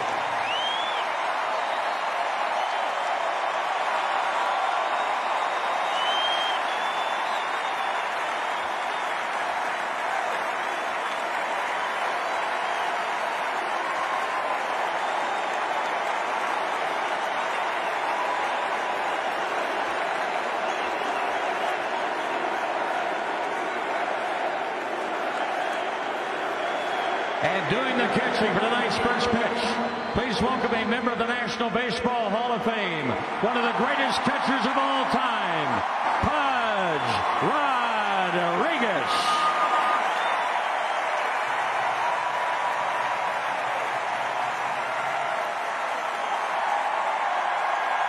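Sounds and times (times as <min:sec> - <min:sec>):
stadium crowd cheering: 0:00.0 - 0:48.0
short whistles: 0:05.8 - 0:08.0.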